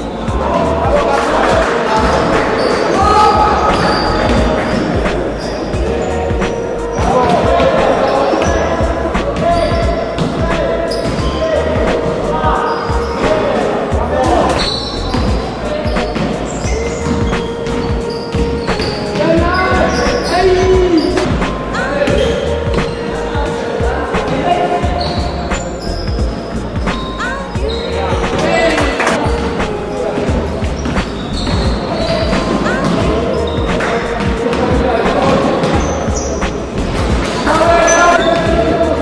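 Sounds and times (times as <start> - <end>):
players' voices: 0.0 - 39.0.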